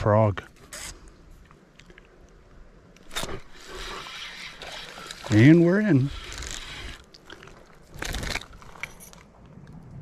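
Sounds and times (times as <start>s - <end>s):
fishing line hissing out: 3.1s - 5.3s.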